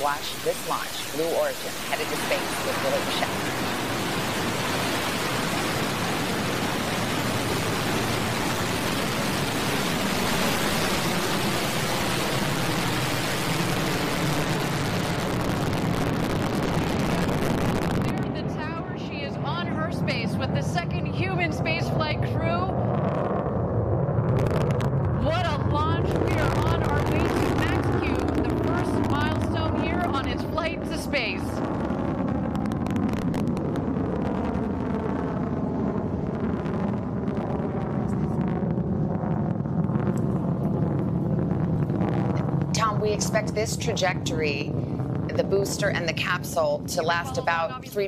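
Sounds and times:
voices: 0.0s - 3.5s, 18.0s - 22.7s, 25.2s - 31.6s, 42.8s - 48.0s
rocket engine roar: 0.0s - 48.0s.

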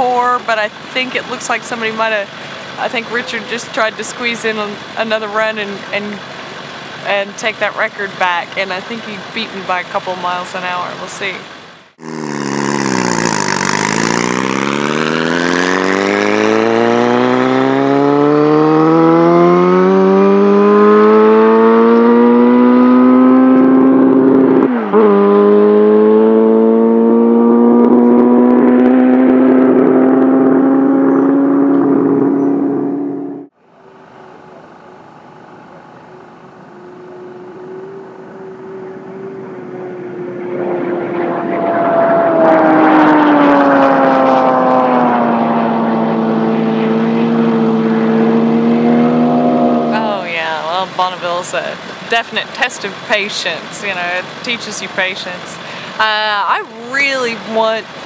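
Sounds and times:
quieter engine sound: 0.0s - 58.0s
motorcycle accelerating hard: 11.9s - 34.5s, 36.0s - 52.1s.

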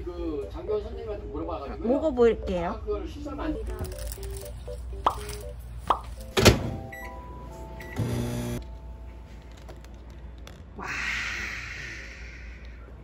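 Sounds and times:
appliance keypad beeps: 6.8s - 8.4s
short buzzing tone: 7.8s - 8.6s.

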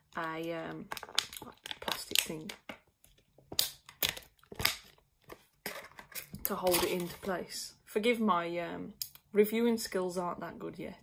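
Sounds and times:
plastic packaging crackling: 0.1s - 7.4s.

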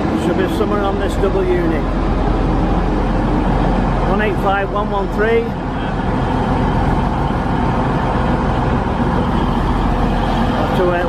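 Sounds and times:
diesel train engines running: 0.0s - 11.0s.

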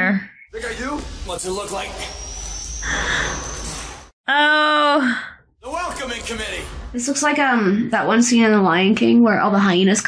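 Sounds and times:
thin high whine: 0.5s - 4.1s.

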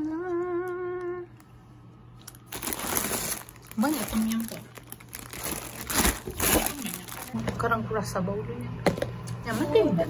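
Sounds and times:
person humming: 0.0s - 1.4s
plastic packets crinkling: 2.2s - 7.6s.

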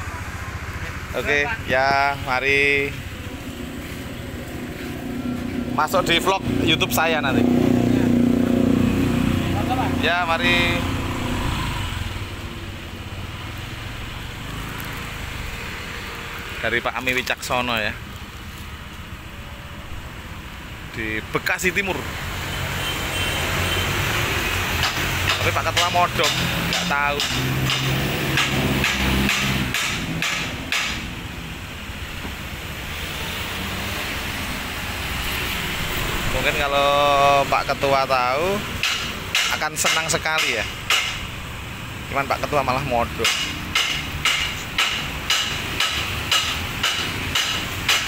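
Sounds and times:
street traffic noise: 0.0s - 48.0s
vehicle engines humming: 0.0s - 48.0s.

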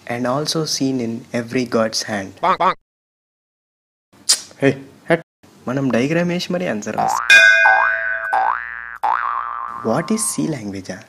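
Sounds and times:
cartoon boing: 7.0s - 10.3s
ringing tone: 7.2s - 8.8s.

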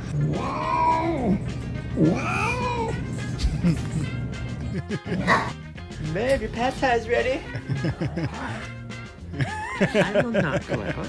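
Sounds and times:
background music: 0.0s - 11.0s
cat meowing: 0.1s - 1.4s, 2.0s - 3.1s.

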